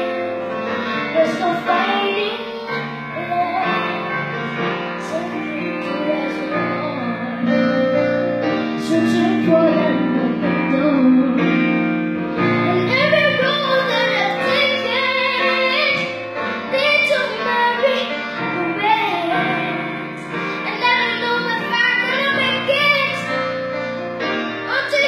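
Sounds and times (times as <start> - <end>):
piano accompaniment: 0.0 - 25.0
boy singing into a microphone: 0.8 - 4.0, 5.0 - 7.9, 8.8 - 11.8, 12.5 - 23.4, 24.7 - 25.0.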